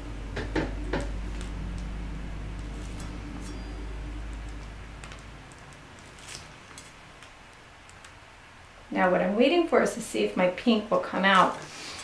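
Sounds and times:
low steady hum: 0.0s - 11.9s
plastic piping bag crinkling: 4.2s - 8.2s.

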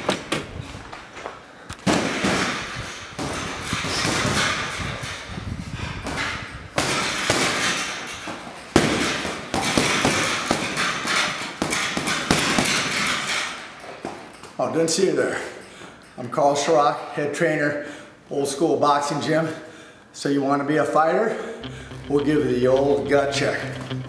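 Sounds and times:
punches thudding into punching bag: 1.8s - 5.1s, 6.0s - 13.4s.

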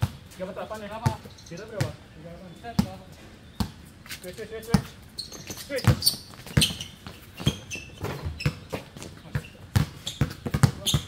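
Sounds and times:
basketball bouncing on hard court: 1.0s - 2.0s, 4.7s - 4.9s, 5.5s - 11.0s.

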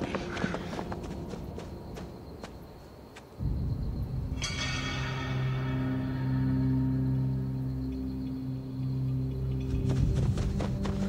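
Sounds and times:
low sustained drone: 3.4s - 9.6s.

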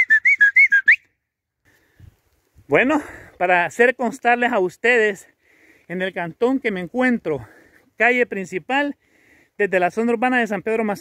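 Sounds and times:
person whistling short notes: 0.0s - 1.2s.

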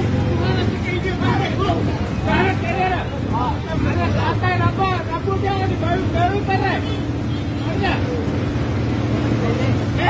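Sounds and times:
low hum of road traffic: 0.0s - 10.0s
men talking over one another: 0.0s - 10.0s.

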